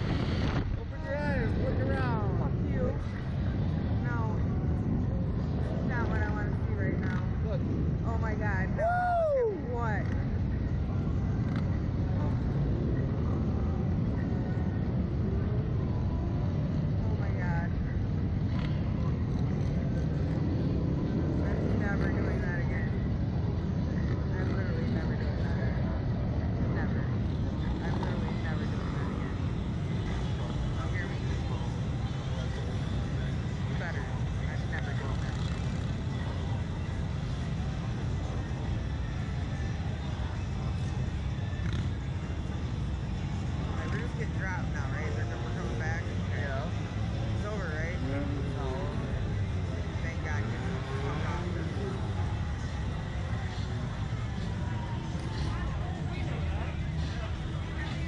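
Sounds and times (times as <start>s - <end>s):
wind rumble on microphone: 0.0s - 31.7s
muffled voices: 0.0s - 58.0s
person yelling while falling: 8.8s - 9.6s.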